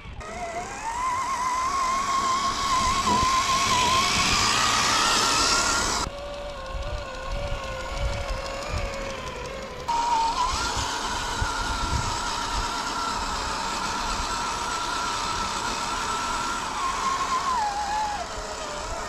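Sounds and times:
electric motor whining: 0.0 - 19.0.

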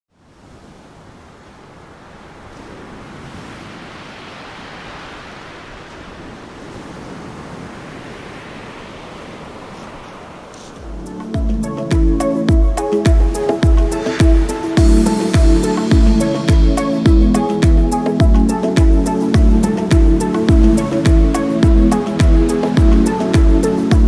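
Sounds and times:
ocean surf rushing: 0.2 - 24.0
music with strong beat: 10.9 - 24.0.

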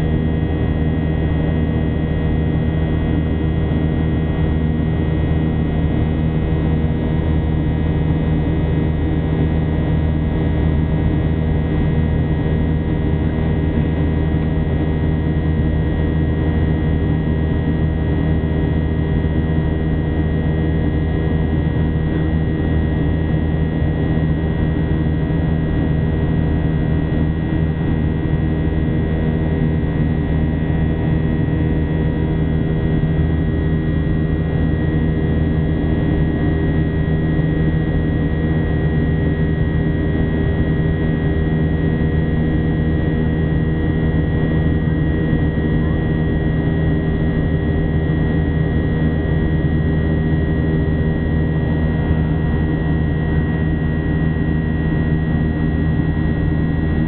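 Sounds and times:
jet engine drone in cabin: 0.0 - 57.0.

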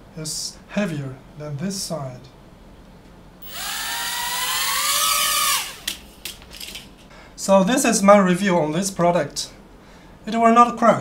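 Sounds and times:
toy quadcopter motors whining: 3.4 - 6.0.

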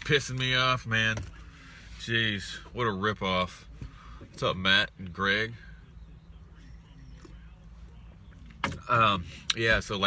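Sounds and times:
low hum inside car cabin: 0.0 - 10.0.

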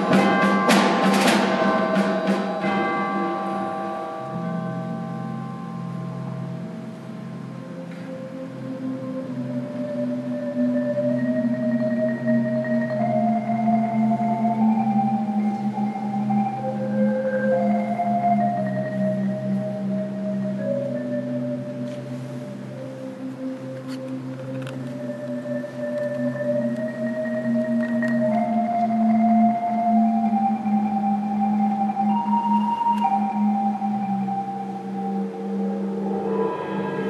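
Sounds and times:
percussion ensemble playing: 0.0 - 7.5, 26.6 - 37.0
percussion ensemble sustained chord: 0.0 - 37.0.

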